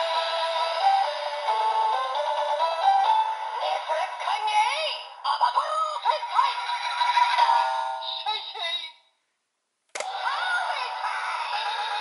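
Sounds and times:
tinny toy speaker jingle: 3.5s - 9.0s, 10.0s - 12.0s.

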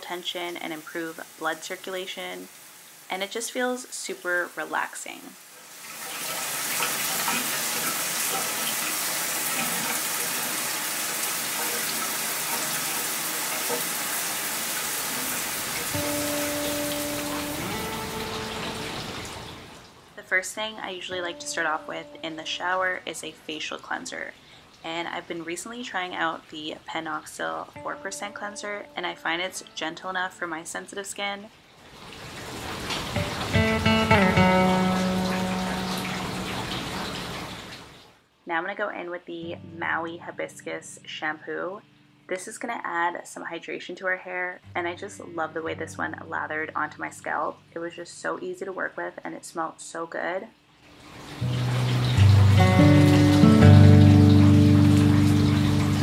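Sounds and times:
shower water spraying on tiles: 4.3s - 19.7s, 31.9s - 38.1s
background music: 15.8s - 19.6s, 20.8s - 23.0s, 27.8s - 30.5s, 33.2s - 37.0s, 51.4s - 56.0s.

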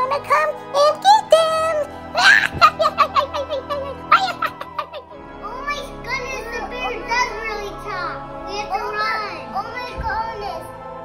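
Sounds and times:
young children's voices: 0.0s - 10.8s
background music: 0.0s - 11.0s.

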